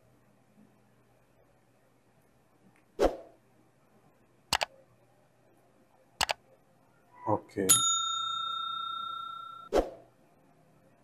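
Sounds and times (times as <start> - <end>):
metallic bell-like ring: 7.7 - 9.7.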